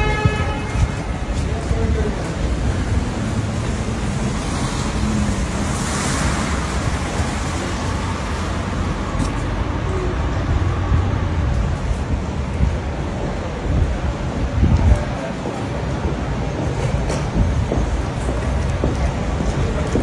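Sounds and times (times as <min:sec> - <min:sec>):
city traffic noise: 0:00.0 - 0:20.0
wind rumble on microphone: 0:00.0 - 0:20.0
tyres hissing on wet road: 0:02.0 - 0:11.4.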